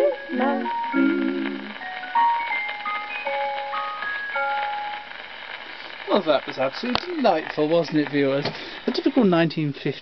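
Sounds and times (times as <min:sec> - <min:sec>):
gramophone dance-band record: 0:00.0 - 0:10.0.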